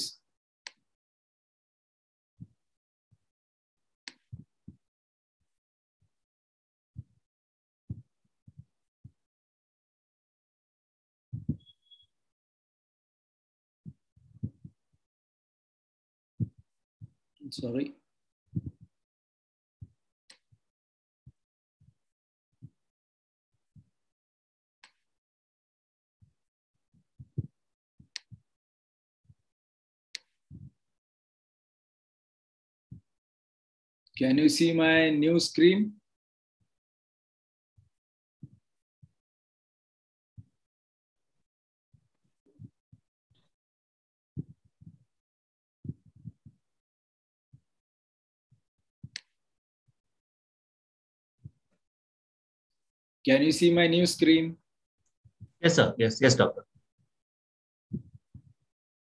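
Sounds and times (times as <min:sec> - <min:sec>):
soft muffled low thumps: 0:11.4 - 0:11.7, 0:18.5 - 0:18.8.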